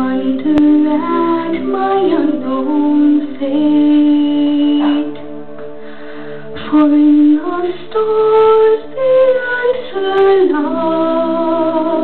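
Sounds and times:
girl singing a lullaby: 0:00.0 - 0:05.3, 0:06.6 - 0:12.0.

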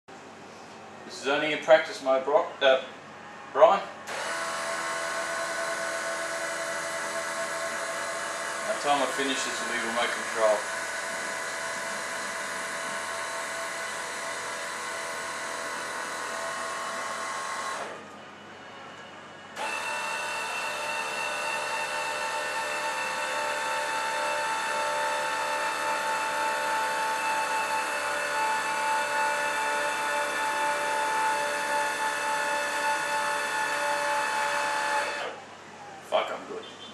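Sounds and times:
electric motor whining: 0:04.1 - 0:18.2, 0:19.5 - 0:36.2.

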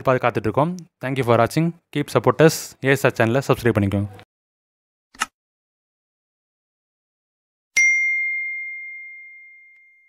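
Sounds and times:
notification bell chime: 0:07.8 - 0:10.0.

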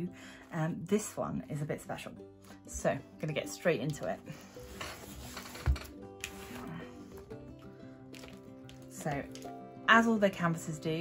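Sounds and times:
background music: 0:00.0 - 0:11.0
cloth bag rustling: 0:04.4 - 0:07.3.

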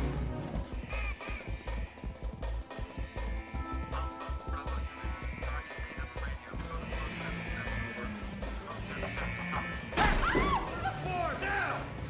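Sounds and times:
tense film score: 0:00.0 - 0:12.0
people shouting cries: 0:08.8 - 0:11.7.

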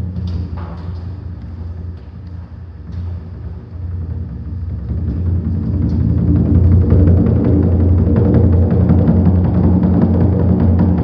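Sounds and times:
soft drum roll rumble: 0:00.0 - 0:11.0.

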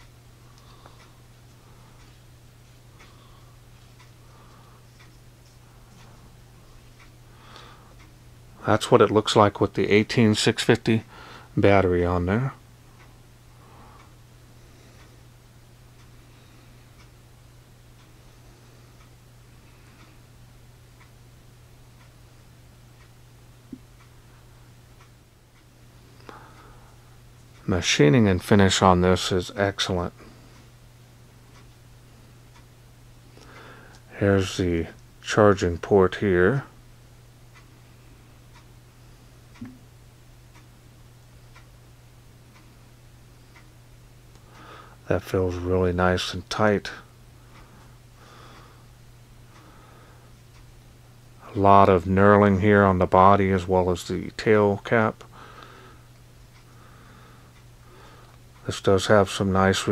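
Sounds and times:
faint regular ticking: 0:00.0 - 0:59.9
steady low hum: 0:00.0 - 0:59.9
clock ticking: 0:32.4 - 0:32.7, 0:38.4 - 0:38.7, 0:39.5 - 0:40.7, 0:41.4 - 0:41.7, 0:43.4 - 0:43.8.

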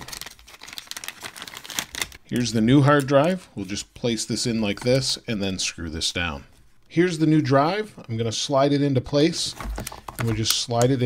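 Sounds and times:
plastic bag crinkling: 0:00.0 - 0:03.4.

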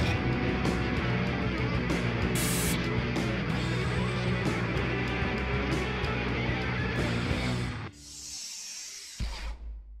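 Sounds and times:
high hiss: 0:02.4 - 0:02.8.

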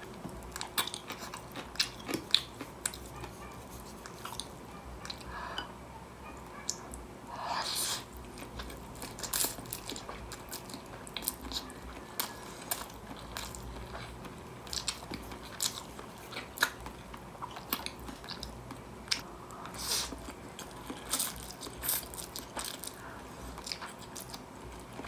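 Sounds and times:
chewing noodles: 0:00.5 - 0:05.3, 0:07.8 - 0:25.0.

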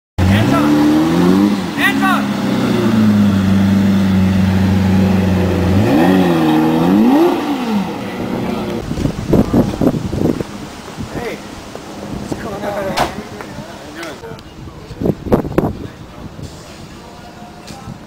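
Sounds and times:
car engine revving: 0:00.2 - 0:12.5.

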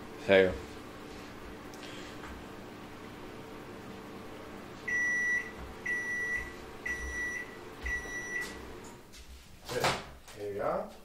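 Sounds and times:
microwave oven humming: 0:00.0 - 0:09.2.

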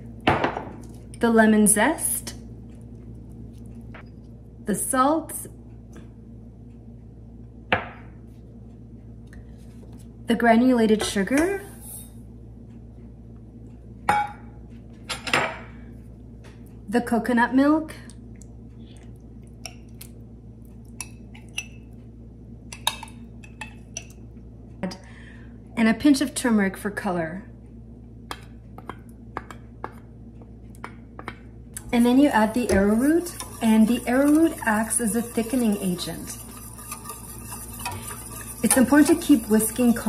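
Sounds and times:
low steady hum: 0:00.0 - 0:40.0
metal utensils tapping saucepan and bowl: 0:32.0 - 0:40.0.

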